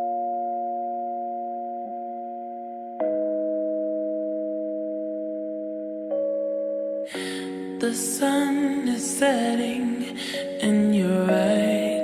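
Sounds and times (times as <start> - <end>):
soft reverb-heavy chord: 0.0 - 12.0.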